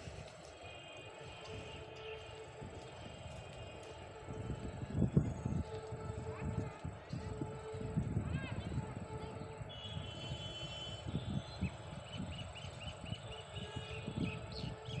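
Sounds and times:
train rumbling: 0:00.0 - 0:15.0.

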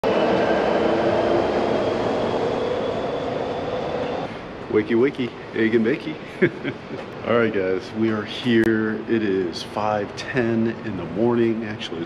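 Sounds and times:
high whining tones: 0:00.0 - 0:04.4
jet aircraft drone: 0:00.0 - 0:06.4.

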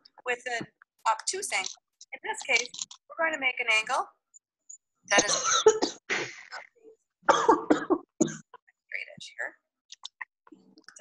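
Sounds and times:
narrator speaking: 0:00.0 - 0:04.1, 0:05.1 - 0:06.7.

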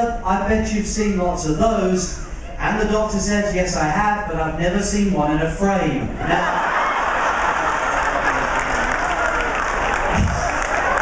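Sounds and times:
audience laughing: 0:06.1 - 0:11.0
audience applauding: 0:06.3 - 0:11.0.

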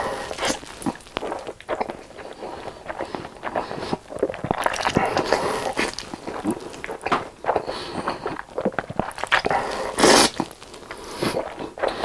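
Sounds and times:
person slurping noodles: 0:00.0 - 0:12.0
wet mouth clicks and smacks: 0:00.4 - 0:07.7.

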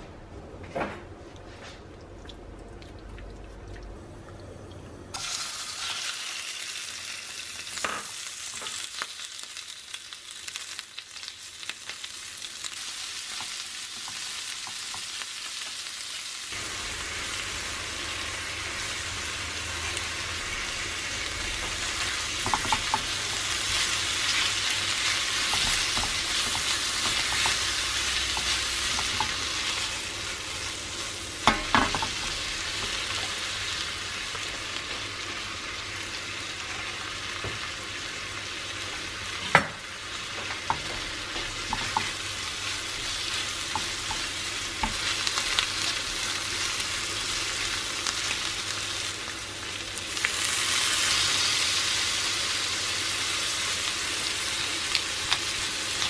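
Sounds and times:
food sizzling in hot oil: 0:05.1 - 0:56.0.

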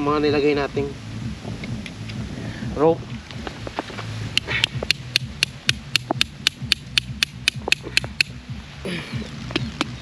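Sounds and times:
hatchet striking tent stake: 0:04.4 - 0:08.4.

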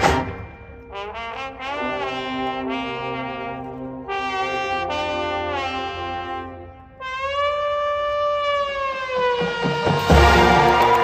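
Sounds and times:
brass band holding long note: 0:00.0 - 0:11.0.

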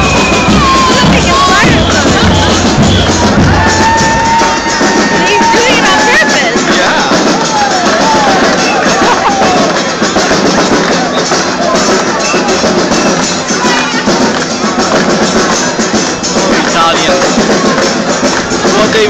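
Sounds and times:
crowd chatter: 0:00.0 - 0:19.0
live street music with percussion: 0:00.0 - 0:19.0.

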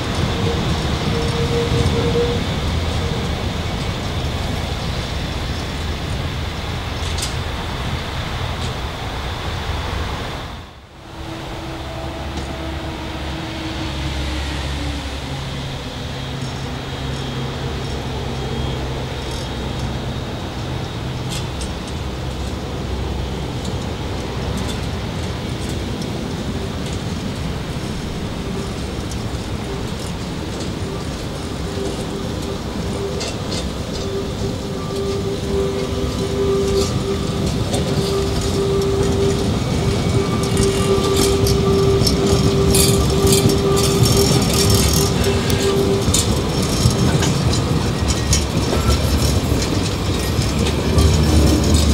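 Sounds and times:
low steady whine: 0:00.0 - 0:51.9
train wheels rumbling: 0:00.0 - 0:51.9.

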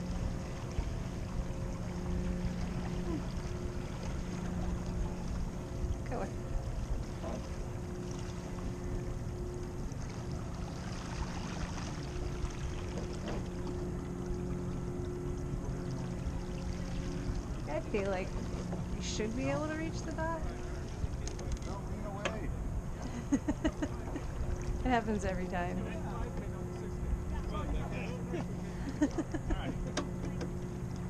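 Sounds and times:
faint low hum: 0:00.0 - 0:31.0
water noise: 0:00.0 - 0:31.0.

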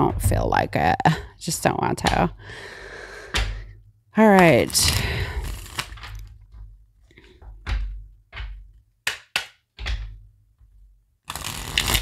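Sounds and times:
cards being shuffled: 0:04.4 - 0:07.4, 0:11.3 - 0:12.0.

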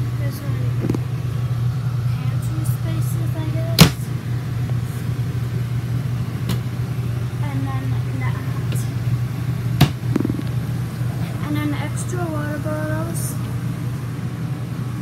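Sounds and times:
low mechanical hum: 0:00.0 - 0:15.0.

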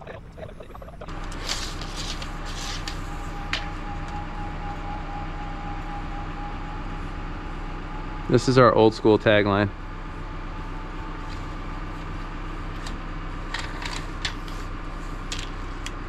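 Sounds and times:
engine hum with whine: 0:00.0 - 0:16.0.

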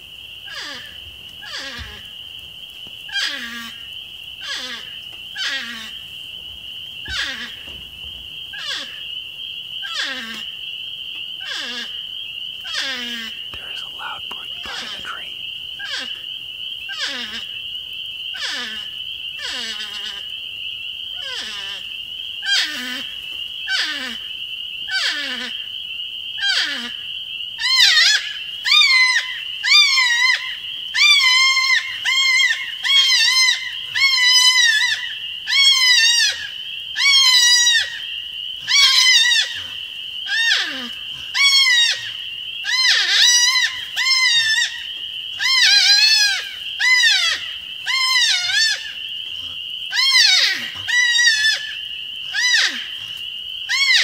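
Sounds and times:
porcupine screaming: 0:07.1 - 0:07.6, 0:27.6 - 0:38.0, 0:38.6 - 0:54.0.

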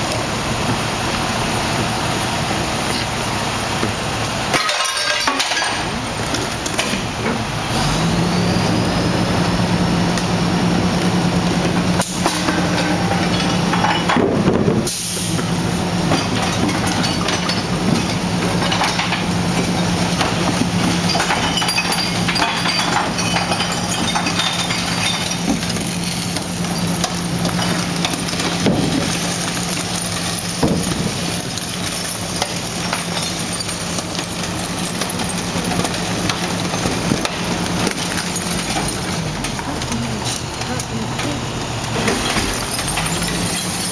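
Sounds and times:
garbage truck engine revving: 0:00.0 - 0:43.9
trash clattering into hopper: 0:00.1 - 0:09.2, 0:09.8 - 0:43.9.

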